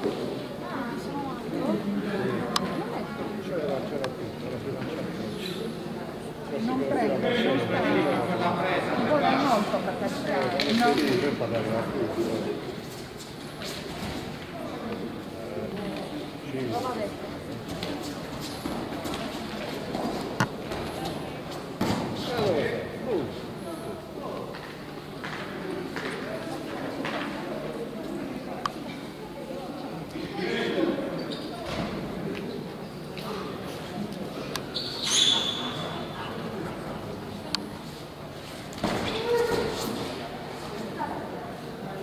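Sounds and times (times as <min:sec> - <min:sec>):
murmur of voices in a hall: 0:00.0 - 0:42.0.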